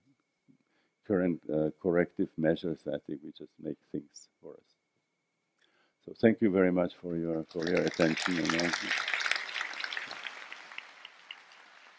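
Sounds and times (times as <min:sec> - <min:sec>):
audience applause: 0:07.5 - 0:11.9.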